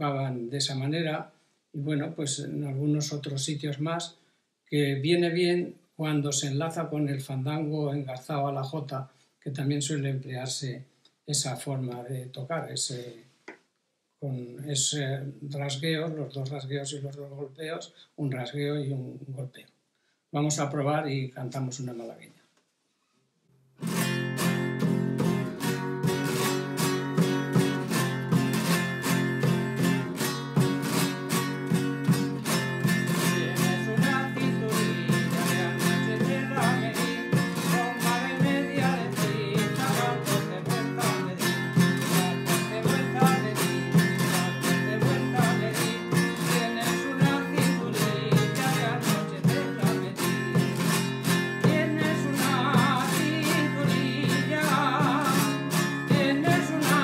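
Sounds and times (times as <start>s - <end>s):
guitar strumming: 23.8s - 57.0s
man singing: 31.7s - 57.0s.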